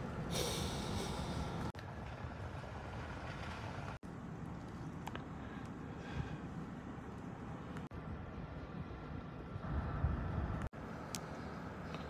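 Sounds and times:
breathy rush of air: 0.2s - 1.7s.

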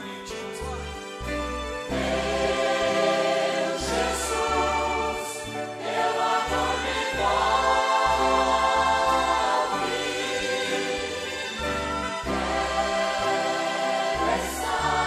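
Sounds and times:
violins: 0.0s - 15.0s
congregation singing a hymn: 1.9s - 15.0s.

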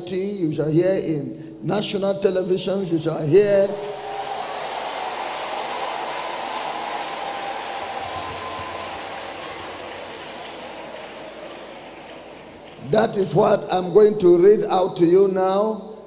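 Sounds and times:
crowd applauding and cheering: 3.8s - 13.3s.

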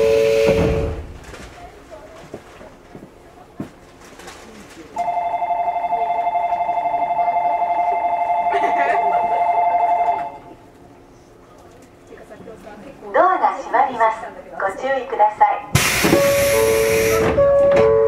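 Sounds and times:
two-tone electronic departure bell: 5.0s - 10.4s, 16.2s - 18.0s.

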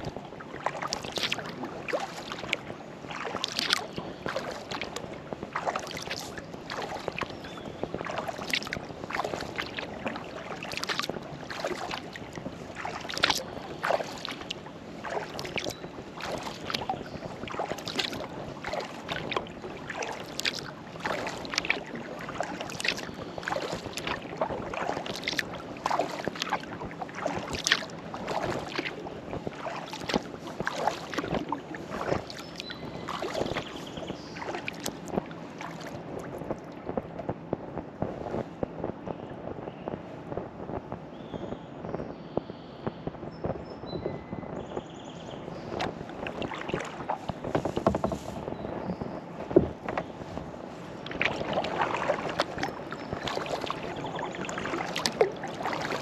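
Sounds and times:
paddle splashing water: 0.0s - 37.2s, 45.1s - 56.0s.

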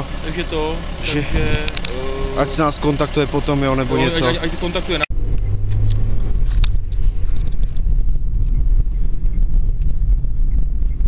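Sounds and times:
car running inside cabin: 0.0s - 11.0s.

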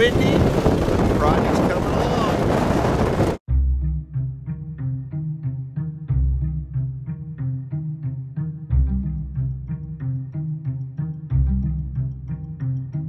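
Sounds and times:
wind buffeting microphone: 0.0s - 3.4s
background music with bass line: 3.5s - 13.0s.

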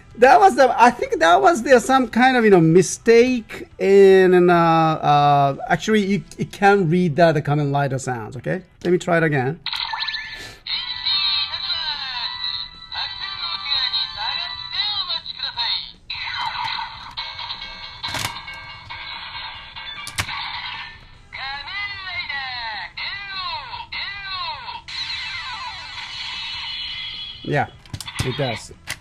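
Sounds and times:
toy electronic sound effects: 9.7s - 28.8s
tinny toy music: 9.7s - 28.9s
recorded voice from toy speaker: 10.7s - 17.1s, 21.4s - 28.8s
swooping electronic effects: 24.6s - 27.7s.

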